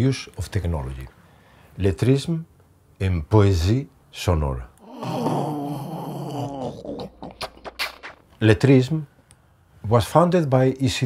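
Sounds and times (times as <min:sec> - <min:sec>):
wavering vocal tone: 0:04.8 - 0:08.1
mouth clicks and pops: 0:07.0 - 0:08.4.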